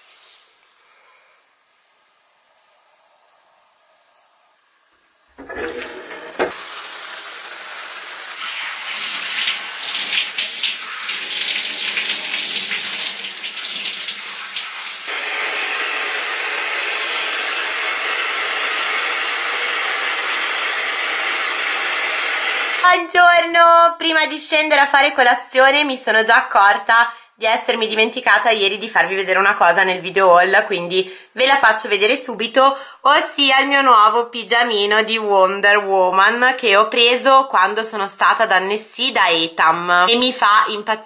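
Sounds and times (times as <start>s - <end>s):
shower water spraying: 5.5s - 22.8s.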